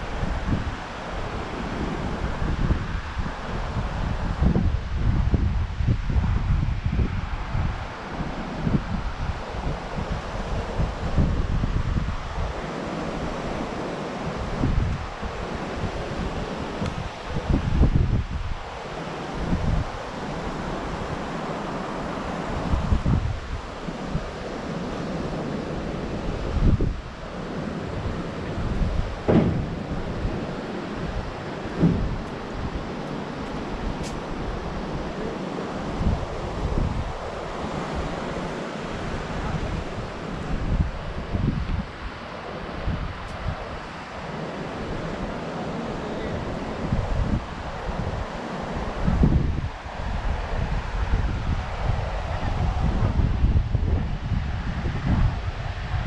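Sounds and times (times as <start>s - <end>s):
surf breaking on beach: 0.0s - 56.0s
wind buffeting microphone: 0.0s - 56.0s.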